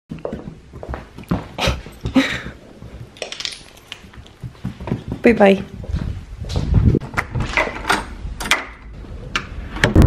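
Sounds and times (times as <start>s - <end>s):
knocks and rustles: 0.1s - 10.0s
metallic clinking and jingling: 1.2s - 4.9s.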